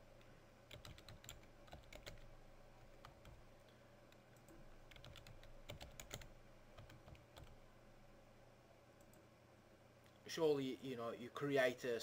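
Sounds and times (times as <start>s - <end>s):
faint keyboard typing: 0.1s - 7.7s.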